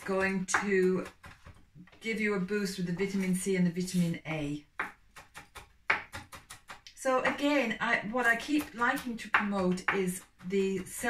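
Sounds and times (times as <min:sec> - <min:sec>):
knife chopping on wooden board: 0:04.8 - 0:07.4, 0:08.2 - 0:11.0.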